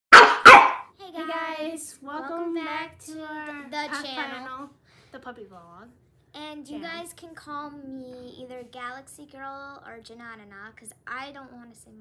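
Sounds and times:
dog barking: 0:00.1 - 0:00.9
girl's voice: 0:01.0 - 0:04.7, 0:06.3 - 0:12.0.

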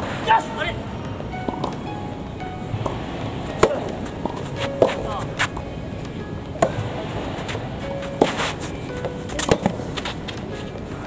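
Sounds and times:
tennis ball bouncing on court: 0:01.0 - 0:10.4.

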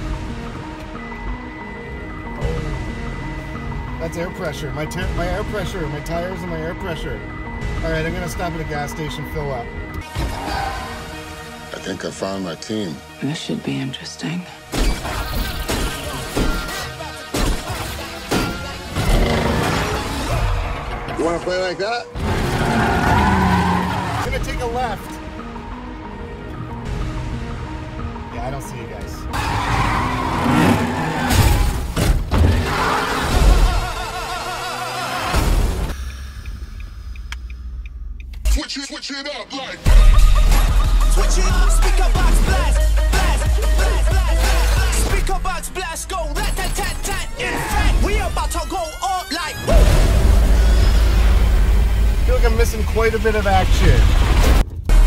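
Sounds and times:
tyres squealing: 0:22.2 - 0:24.3.

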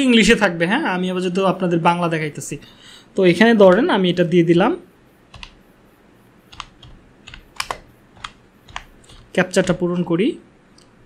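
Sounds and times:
computer keyboard keystrokes: 0:05.3 - 0:05.6, 0:06.5 - 0:09.8.

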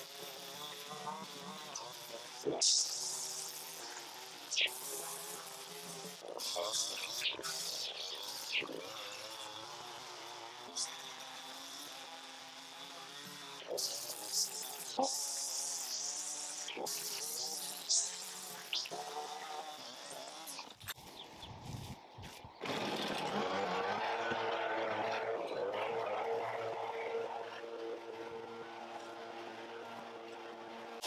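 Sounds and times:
leaf blower running: 0:00.0 - 0:21.0, 0:22.6 - 0:31.0
string trimmer buzzing: 0:00.0 - 0:31.0.

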